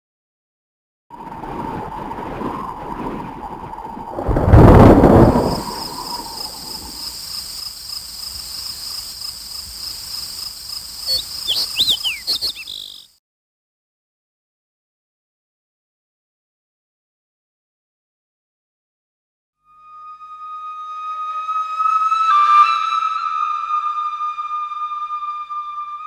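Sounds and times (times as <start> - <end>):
loud low whoosh: 4.1 - 6.7
chirp-like glides: 11.1 - 13.1.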